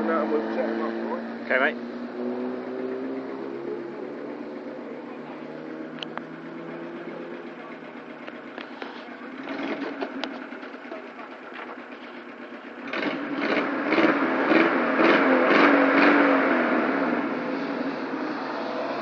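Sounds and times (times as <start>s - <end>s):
car engine running: 0.0s - 19.0s.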